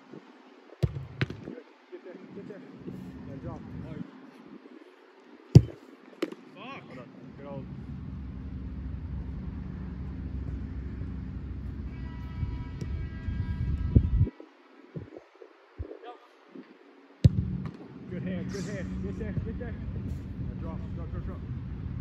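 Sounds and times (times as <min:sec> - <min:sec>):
football kicked with a thud: 0:00.8 - 0:01.5, 0:05.6 - 0:06.4, 0:17.2 - 0:17.8
steady low rumble: 0:07.2 - 0:14.3, 0:17.2 - 0:22.0.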